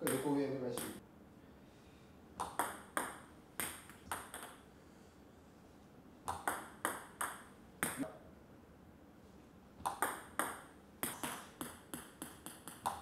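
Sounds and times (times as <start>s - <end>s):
table tennis ball clicks: 9.8s - 13.0s.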